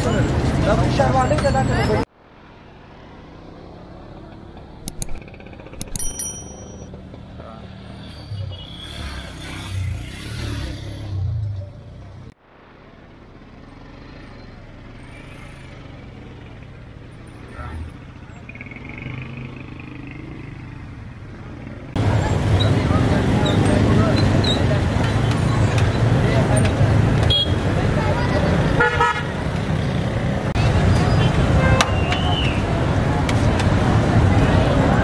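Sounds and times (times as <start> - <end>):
motor rickshaws and cars: 0.0 - 35.0
thin metallic rings: 5.9 - 6.9
people's voices: 22.0 - 28.8.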